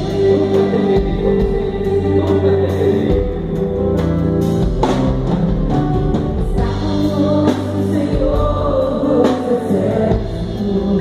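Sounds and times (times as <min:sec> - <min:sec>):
women and man singing together: 0:00.0 - 0:03.8, 0:06.4 - 0:11.0
band with drums and guitar: 0:00.0 - 0:11.0.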